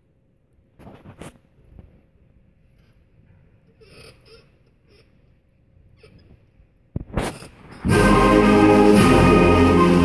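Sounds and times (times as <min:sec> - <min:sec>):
sharp drum strokes: 0:07.7 - 0:10.0
concert band playing a march: 0:07.8 - 0:10.0.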